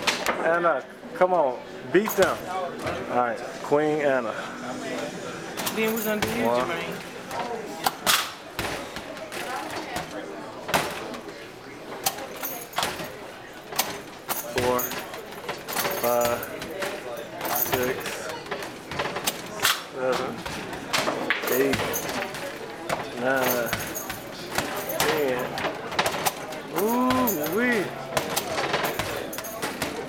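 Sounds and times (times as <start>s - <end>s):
basketballs hitting backboard and rim: 8.5s - 11.2s, 20.2s - 30.0s.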